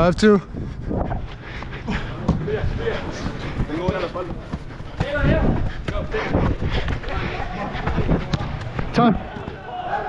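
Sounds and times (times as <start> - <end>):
running footfalls on turf: 0.6 - 10.0
ball kicks: 7.8 - 9.7.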